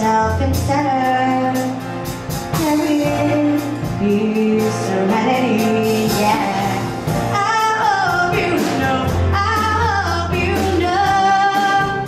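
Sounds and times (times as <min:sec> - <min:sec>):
woman singing into microphone: 0:00.0 - 0:01.8, 0:02.6 - 0:12.0
band with drums: 0:00.0 - 0:12.0.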